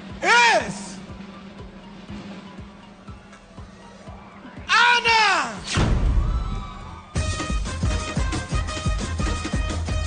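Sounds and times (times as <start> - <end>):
deep boom: 5.7 - 6.7.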